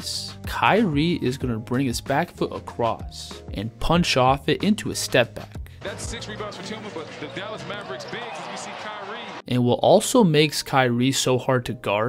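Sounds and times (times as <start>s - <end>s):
crowd murmuring: 5.8s - 9.4s.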